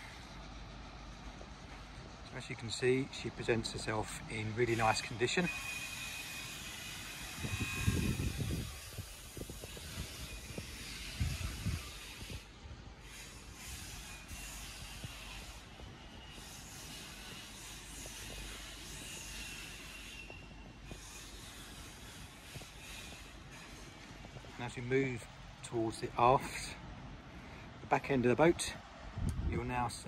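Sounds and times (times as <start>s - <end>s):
low rumbling gusts: 7.3s - 12.9s, 28.6s - 30.0s.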